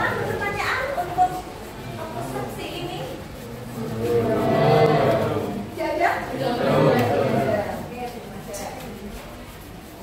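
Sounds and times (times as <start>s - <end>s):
people talking: 0.0s - 9.5s.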